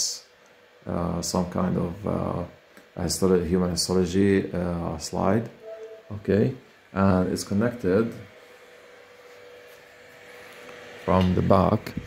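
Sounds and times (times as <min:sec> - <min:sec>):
projector cooling fan hum: 0:00.0 - 0:12.0
thin steady tone: 0:05.6 - 0:08.6.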